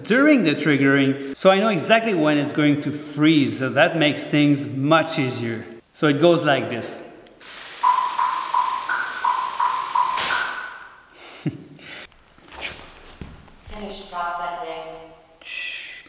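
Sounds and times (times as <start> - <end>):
electronic metronome beeping: 7.6 - 11.1.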